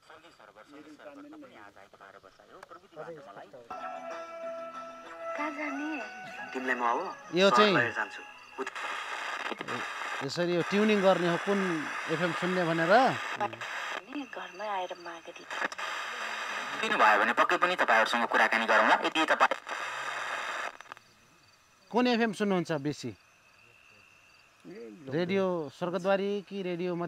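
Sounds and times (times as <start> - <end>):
radio static hiss: 0.0 - 3.8, 5.4 - 27.0
faint insect chirping: 0.0 - 16.5, 18.5 - 27.0
faint clicks: 19.6 - 21.1.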